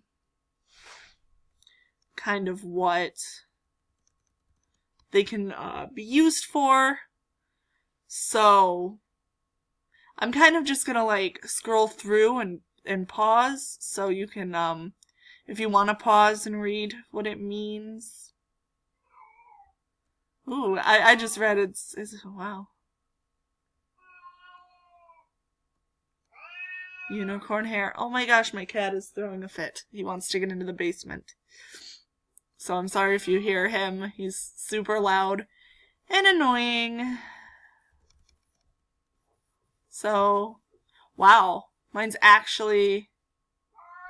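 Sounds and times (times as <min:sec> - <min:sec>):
cat meowing: 0:24.0 - 0:25.3, 0:26.3 - 0:27.2, 0:43.8 - 0:44.0.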